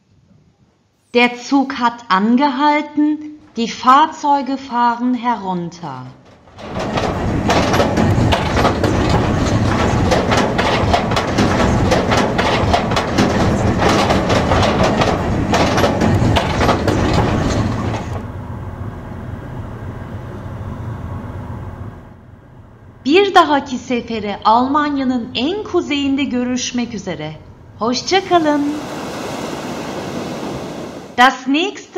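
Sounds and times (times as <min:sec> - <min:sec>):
steady rolling noise: 0:01.8 - 0:31.7
tyres clattering over steel grating: 0:05.8 - 0:18.2.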